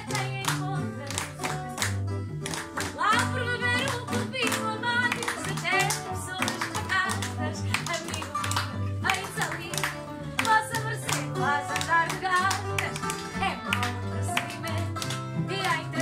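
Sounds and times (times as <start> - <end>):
woman singing: 0.0 - 1.8, 2.8 - 16.0
plucked guitar notes: 0.0 - 16.0.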